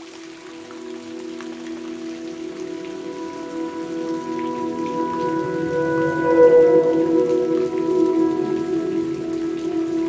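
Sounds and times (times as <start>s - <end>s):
ambient music with held tones: 0.0s - 10.0s
rain drops and hiss: 0.0s - 10.0s.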